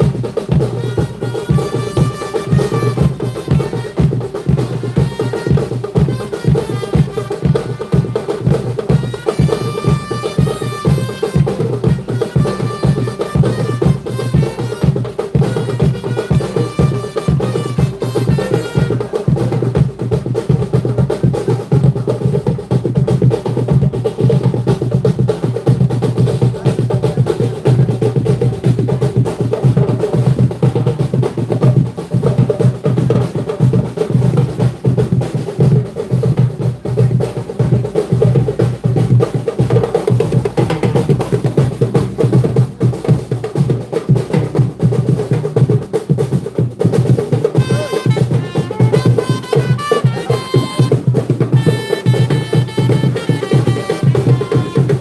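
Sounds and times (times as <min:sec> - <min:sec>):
marching snare and bass drums: 0:00.0 - 0:55.0.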